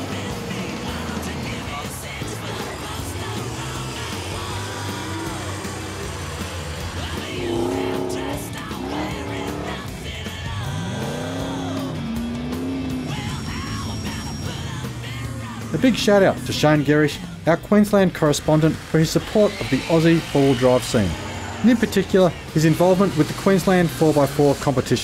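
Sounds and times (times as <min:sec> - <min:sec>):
background music with steady beat: 0:00.0 - 0:25.0
off-road engines revving: 0:00.0 - 0:25.0.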